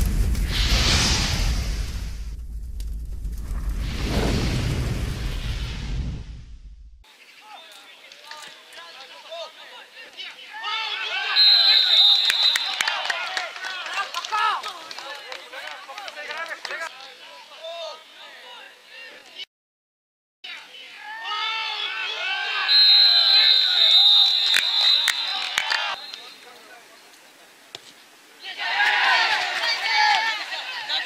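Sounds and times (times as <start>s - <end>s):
deep booming rumble: 0.0s - 7.0s
whooshes: 0.0s - 7.0s
distant shouting voices: 7.4s - 19.2s, 20.5s - 27.1s, 28.4s - 31.0s
referee whistle blast: 11.2s - 13.0s, 22.5s - 26.4s.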